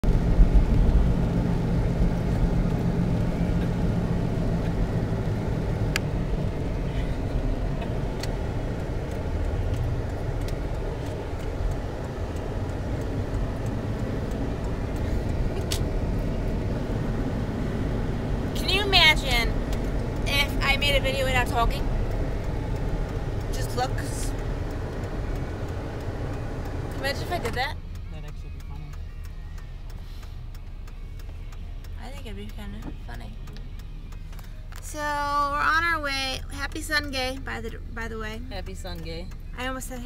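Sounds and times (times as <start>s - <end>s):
car engine and road noise: 0.0s - 40.0s.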